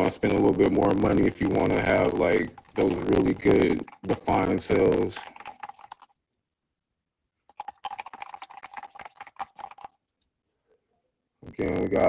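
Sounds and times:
wooden stick stirring paint in cup: 0.0s - 6.6s, 7.4s - 10.3s.

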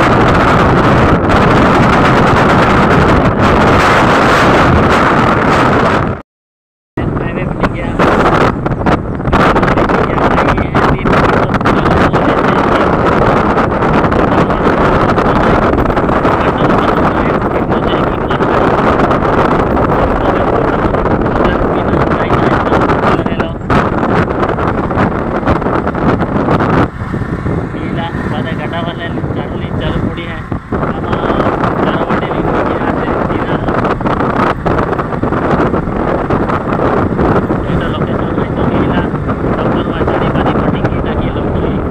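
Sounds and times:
road noise: 0.0s - 6.2s, 7.0s - 41.9s
wind rushing over microphone: 0.0s - 6.2s, 7.0s - 41.9s
motorcycle engine: 23.5s - 39.9s.

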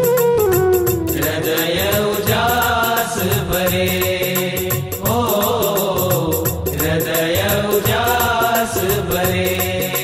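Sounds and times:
instrumental accompaniment: 0.0s - 9.9s
fast percussion beat: 0.0s - 10.0s
devotional singing: 1.1s - 10.0s.

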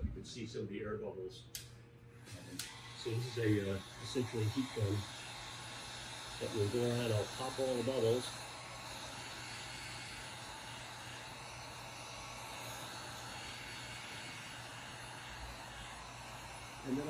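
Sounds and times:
heat gun blowing hot air: 1.6s - 17.0s.

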